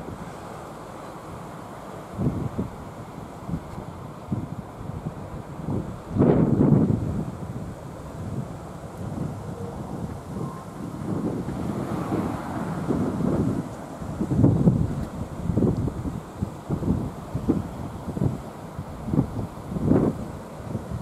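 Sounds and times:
wind buffeting microphone: 0:02.1 - 0:21.0.

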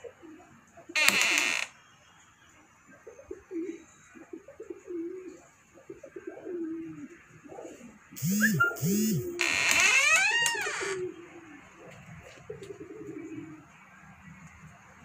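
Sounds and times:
pigeons cooing: 0:00.0 - 0:01.0, 0:02.9 - 0:09.4, 0:10.4 - 0:14.0.

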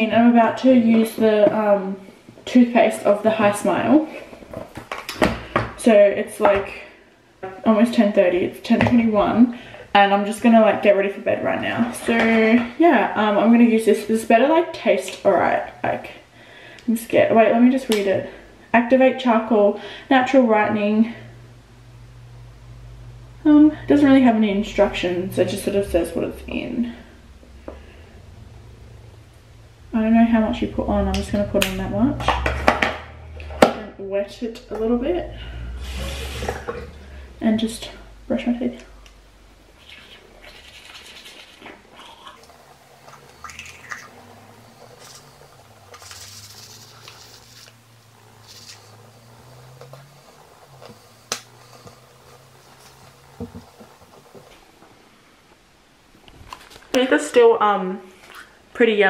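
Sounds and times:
woman's voice: 0:00.0 - 0:04.3, 0:05.8 - 0:07.0, 0:07.6 - 0:16.2, 0:16.9 - 0:21.4, 0:23.4 - 0:27.2, 0:29.9 - 0:32.4, 0:33.6 - 0:39.0, 0:56.9 - 0:58.1, 0:58.7 - 0:59.0
low steady hum: 0:00.0 - 0:59.0
toothbrush scrubbing teeth: 0:39.8 - 0:44.2, 0:44.8 - 0:47.8, 0:48.4 - 0:49.0.

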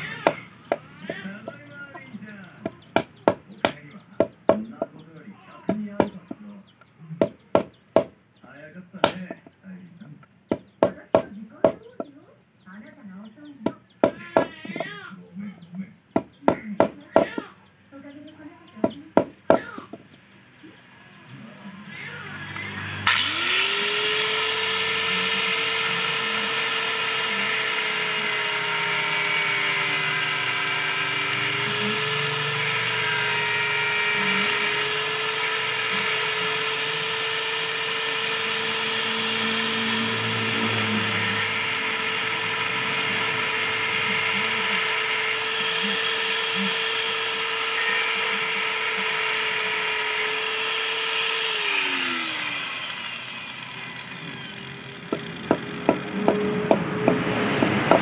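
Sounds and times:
grinder winding down: 0:00.0 - 0:04.9, 0:18.8 - 0:58.0
angle grinder grinding metal: 0:00.0 - 0:05.0, 0:09.0 - 0:09.6, 0:21.6 - 0:58.0.

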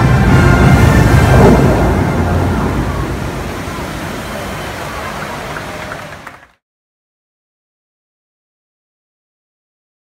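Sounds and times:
fountain water rushing: 0:00.0 - 0:06.6.

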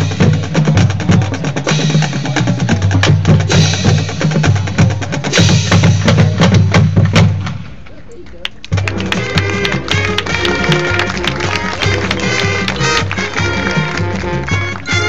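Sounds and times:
marching band brass: 0:00.0 - 0:07.8, 0:08.7 - 0:15.0
rapid percussion hits: 0:00.0 - 0:08.0, 0:08.7 - 0:15.0
steady drum strokes: 0:00.0 - 0:08.0.

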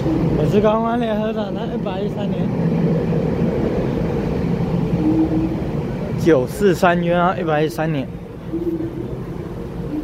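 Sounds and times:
electric train humming: 0:00.0 - 0:10.0.

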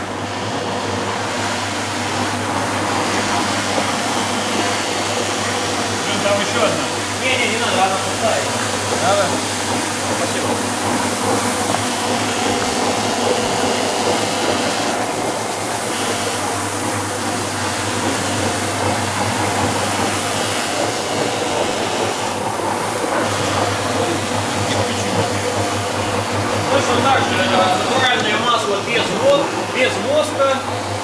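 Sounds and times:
floor buffing machine humming: 0:00.0 - 0:31.0.

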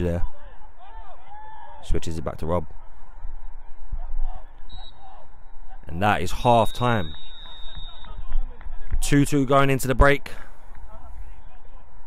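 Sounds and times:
referee's whistle blast: 0:04.6 - 0:05.2, 0:06.3 - 0:08.4.

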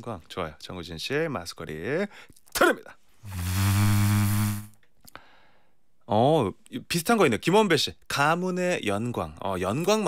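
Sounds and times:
low buzzing tone: 0:03.3 - 0:04.8.

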